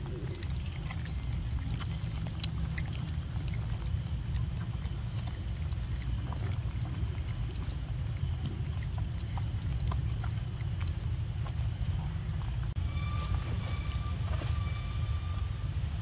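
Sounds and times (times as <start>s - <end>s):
low rumble: 0.0s - 16.0s.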